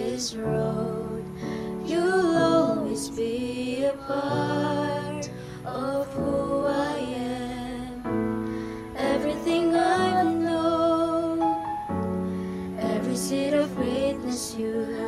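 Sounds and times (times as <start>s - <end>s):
group singing in unison: 0.0s - 8.2s, 8.9s - 11.8s, 12.8s - 15.0s
soft instrumental accompaniment: 7.9s - 15.0s.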